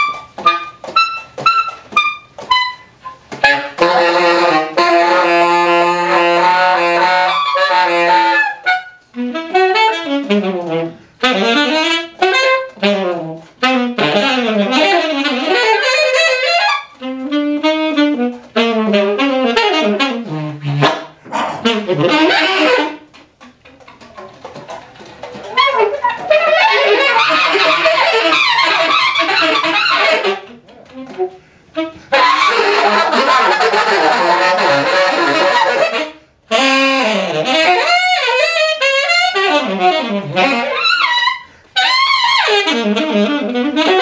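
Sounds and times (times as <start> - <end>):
alto saxophone short notes: 0.0 - 44.0.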